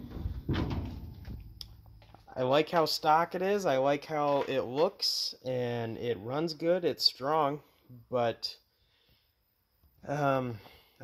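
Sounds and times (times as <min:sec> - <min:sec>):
steel car hood swinging open: 0:00.0 - 0:01.6
hood clunk: 0:00.0 - 0:02.3.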